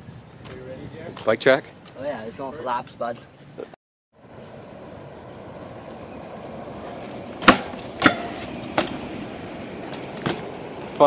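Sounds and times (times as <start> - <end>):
bike rolling over concrete: 4.2 - 11.0
bike knocking on pavement: 7.0 - 9.2, 9.8 - 10.6.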